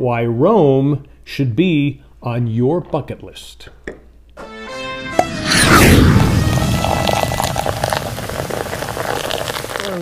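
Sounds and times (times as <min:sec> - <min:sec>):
jet engine rumbling: 0:05.2 - 0:09.8.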